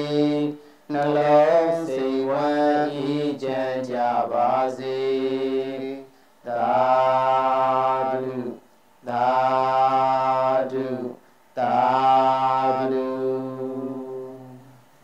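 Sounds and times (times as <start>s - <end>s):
person chanting: 0.0s - 14.8s
breaths: 0.6s - 0.9s, 6.1s - 6.5s, 11.2s - 11.6s.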